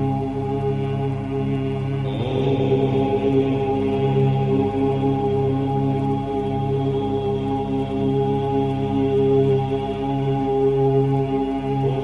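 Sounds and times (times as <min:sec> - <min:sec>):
voices chanting om: 0:00.0 - 0:12.0.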